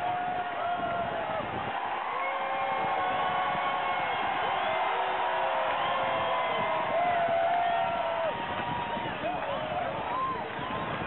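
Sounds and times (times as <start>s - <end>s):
people holding long yells: 0.0s - 11.0s
stadium crowd cheering: 0.0s - 11.0s.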